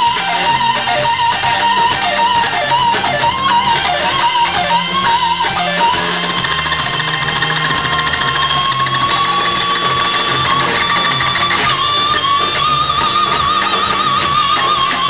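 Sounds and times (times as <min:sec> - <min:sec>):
bass and drums: 0:00.0 - 0:15.0
electric guitar solo: 0:00.0 - 0:15.0.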